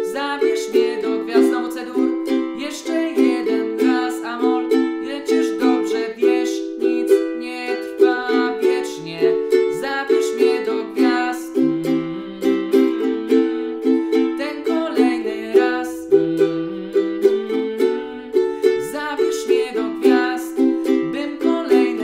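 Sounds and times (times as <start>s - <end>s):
ukulele strumming chords: 0.0s - 22.0s.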